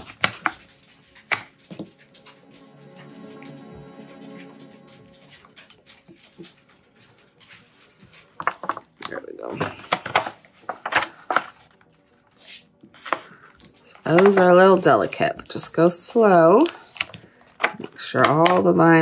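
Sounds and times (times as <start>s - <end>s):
faint background music: 0.0s - 19.0s
vinyl sheet rustling: 0.0s - 19.0s.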